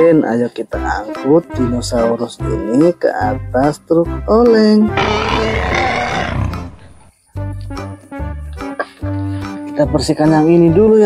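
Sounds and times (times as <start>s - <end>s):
background music: 0.0s - 11.0s
dinosaur roar: 5.0s - 7.1s.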